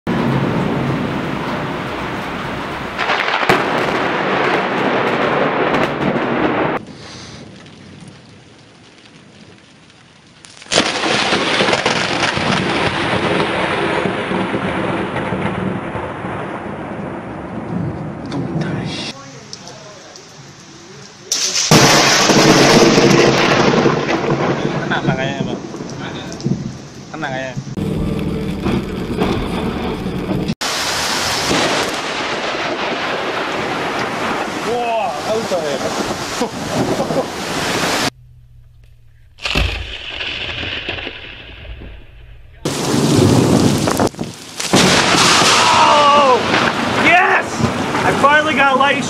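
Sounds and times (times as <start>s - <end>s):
thunder claps rumbling: 0.1s - 9.9s, 10.7s - 19.2s, 21.4s - 49.0s
rain: 0.1s - 49.0s.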